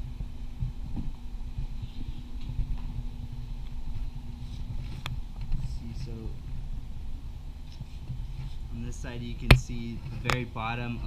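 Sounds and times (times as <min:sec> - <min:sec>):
rumbling and thumping on microphone: 0:00.0 - 0:11.0
steady hum: 0:00.0 - 0:11.0.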